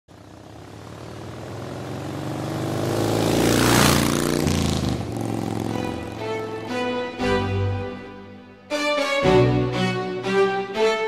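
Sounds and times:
motorcycle passing by: 0.1s - 7.6s.

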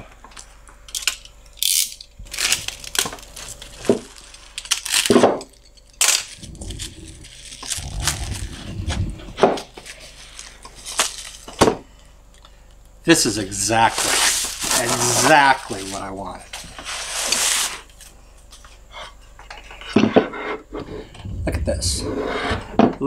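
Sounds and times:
plastic wrap tearing: 1.7s - 5.3s, 13.9s - 16.0s.

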